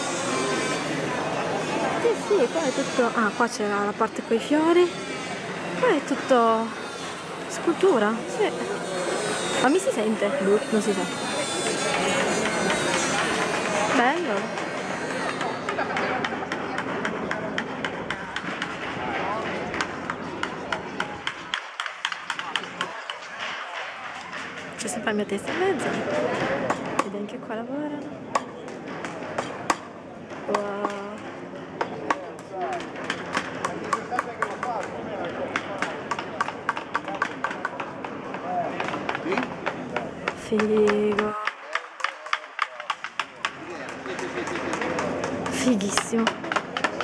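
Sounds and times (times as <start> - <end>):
murmur of people talking: 0.0 - 47.0
people chattering: 0.0 - 47.0.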